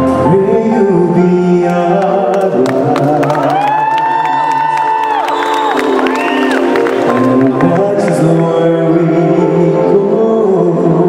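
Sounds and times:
man singing a long high note: 0.0 - 5.3, 7.0 - 11.0
backing music: 0.0 - 11.0
audience cheering and whooping: 2.8 - 7.4.

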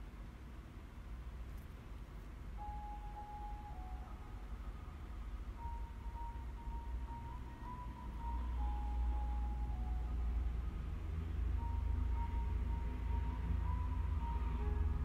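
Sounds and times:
low steady rumble: 0.0 - 15.0
faint simple melody: 2.1 - 15.0.

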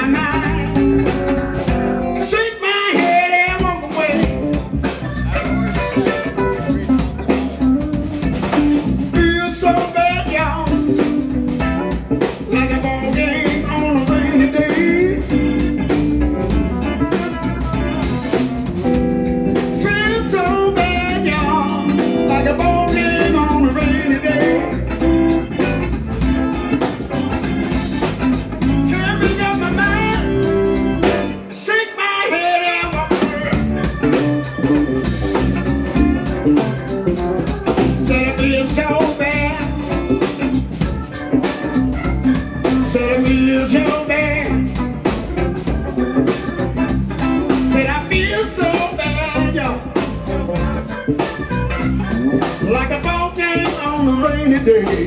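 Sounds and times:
lead guitar bending notes: 0.0 - 2.4, 3.5 - 31.7, 32.4 - 55.0
live blues band playing: 0.0 - 55.0.

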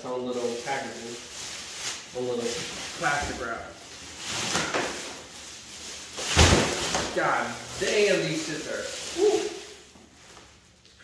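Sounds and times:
plastic wrap rustling: 0.0 - 11.0.

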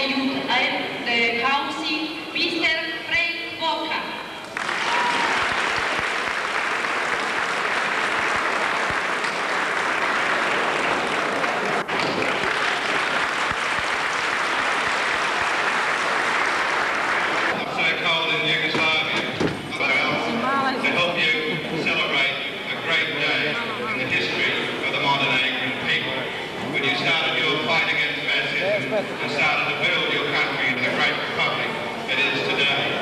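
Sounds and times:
audience applauding: 4.4 - 17.6
man speaking into a microphone: 17.5 - 33.0.

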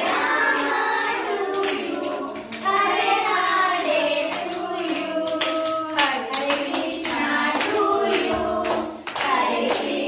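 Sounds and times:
hands clapping: 0.0 - 10.0
women and children singing: 0.0 - 10.0.

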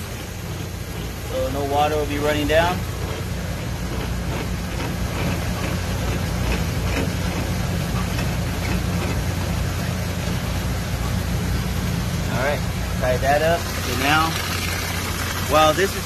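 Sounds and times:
low machinery hum: 0.0 - 16.0
water pump rushing hiss: 0.0 - 16.0.

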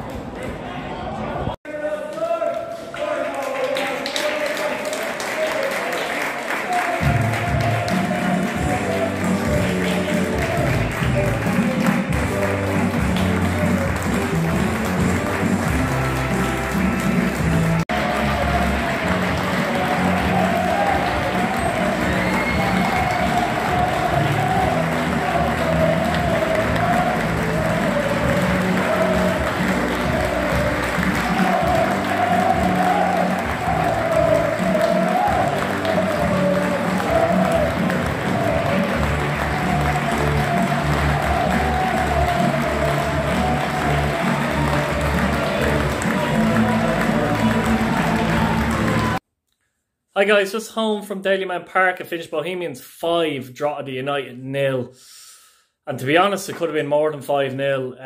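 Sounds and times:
crowd applauding: 2.0 - 49.2
music playing: 6.8 - 49.2.

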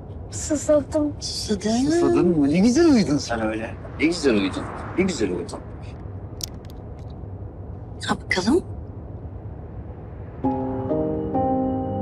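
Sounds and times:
van cabin hum: 0.0 - 11.7.

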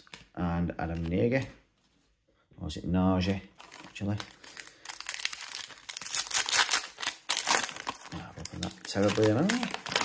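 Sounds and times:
foil wrapper crinkling: 3.6 - 10.0.

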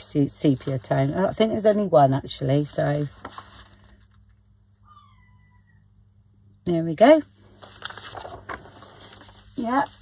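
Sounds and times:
faint animal call: 4.8 - 5.9.

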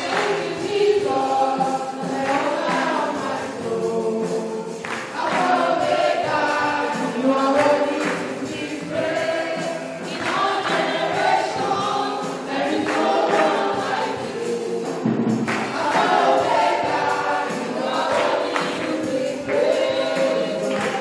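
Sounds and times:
congregation singing: 0.0 - 21.0.

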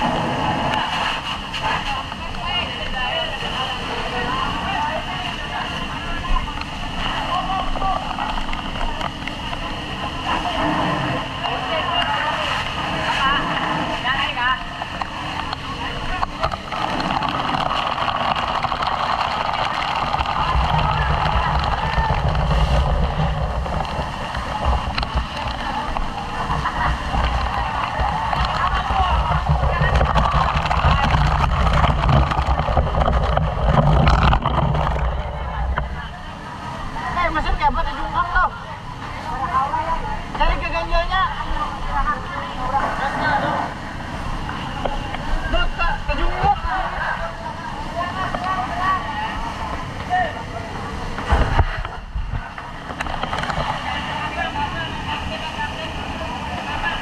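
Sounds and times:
water spraying from fire hoses: 0.0 - 57.0
low rumble: 12.4 - 38.0.

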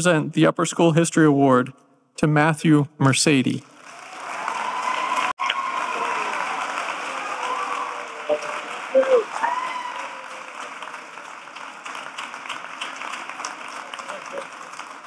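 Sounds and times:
audience applauding: 3.6 - 15.0.

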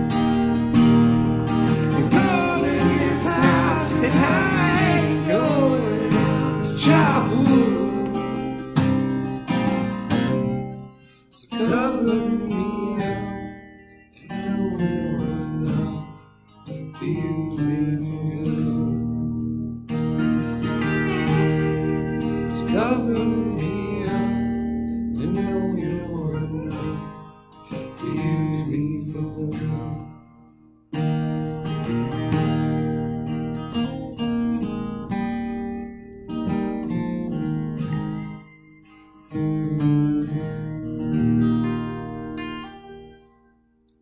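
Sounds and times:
acoustic guitar strumming: 0.0 - 44.0.

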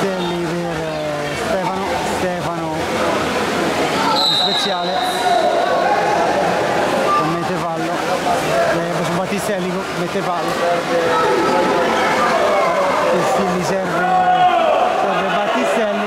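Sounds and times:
voices shouting: 3.8 - 7.2, 11.0 - 13.3, 13.9 - 15.4
short whistle blast: 4.2 - 5.7.

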